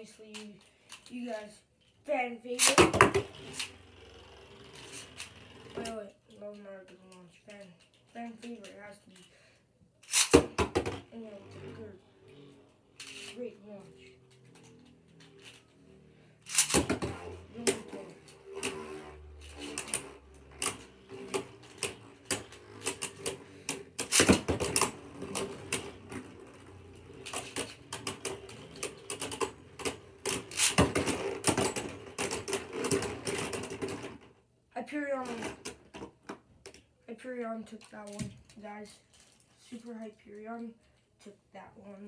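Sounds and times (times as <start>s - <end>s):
spinning tops clashing and clicking: 2.5s - 4.0s, 4.6s - 6.7s, 10.0s - 11.7s, 12.4s - 34.2s
spinning top humming: 3.1s - 6.1s, 11.0s - 34.3s.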